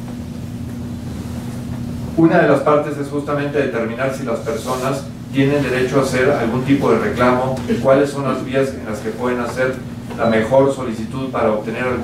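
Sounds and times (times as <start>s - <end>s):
room hum and rumble: 0.0s - 12.0s.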